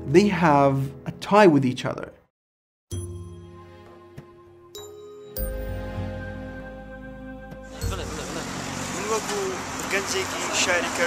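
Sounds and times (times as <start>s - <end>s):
road traffic: 5.5s - 11.0s.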